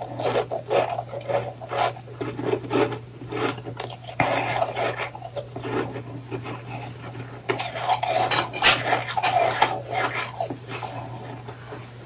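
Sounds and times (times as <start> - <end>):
chewing crunchy ice: 0.0 - 12.0
steady low hum: 0.0 - 12.0.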